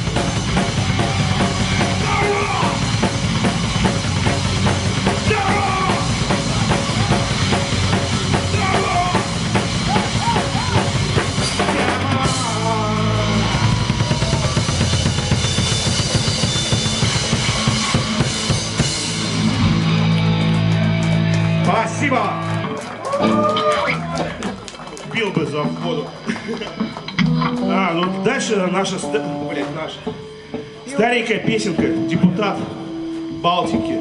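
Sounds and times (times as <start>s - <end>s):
drum kit kick and snare hits: 0.0s - 12.8s
live rock band playing: 0.0s - 34.0s.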